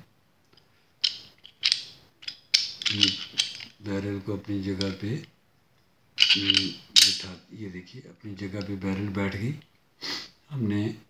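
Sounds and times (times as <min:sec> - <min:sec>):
metal clicks of pistol parts: 0:00.5 - 0:03.8, 0:06.2 - 0:07.4
metal scrape: 0:06.2 - 0:07.4.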